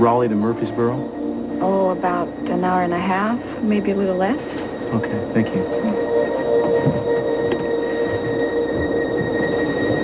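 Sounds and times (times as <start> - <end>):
airliner cabin engine hum: 0.0 - 10.0
steady high whine: 0.0 - 10.0.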